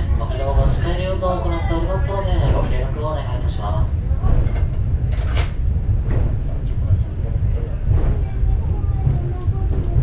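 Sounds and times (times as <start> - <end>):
railway car rumbling on rails: 0.0 - 10.0.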